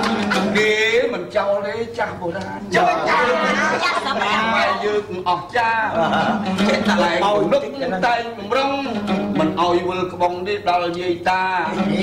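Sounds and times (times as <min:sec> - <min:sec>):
voices talking over one another: 0:02.4 - 0:07.8.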